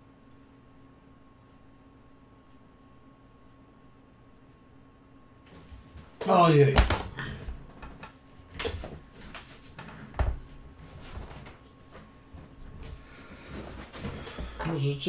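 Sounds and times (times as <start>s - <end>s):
steady electrical hum: 0.0s - 15.0s
soft knocks and thumps: 8.8s - 14.7s.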